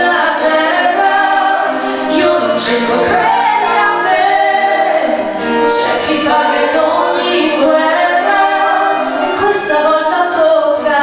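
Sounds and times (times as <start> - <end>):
acoustic guitar: 0.0 - 11.0
man and woman singing: 0.0 - 11.0
violin: 0.0 - 11.0.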